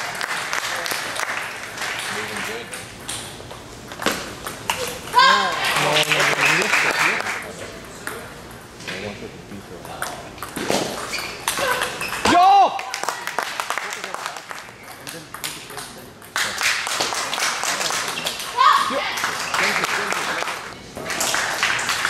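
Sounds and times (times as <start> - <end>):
people shouting: 5.1 - 5.8, 11.6 - 13.0, 18.6 - 19.2.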